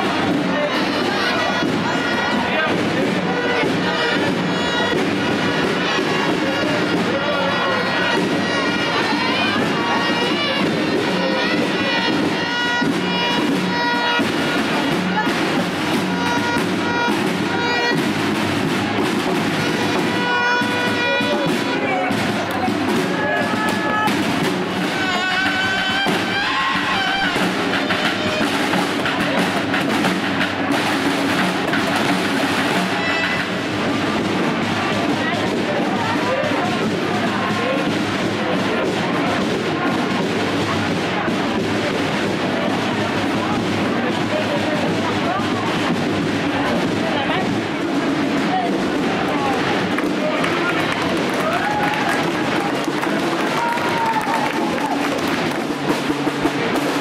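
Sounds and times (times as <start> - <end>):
crowd voices: 0.0 - 57.0
snare drums beating a march: 0.0 - 57.0.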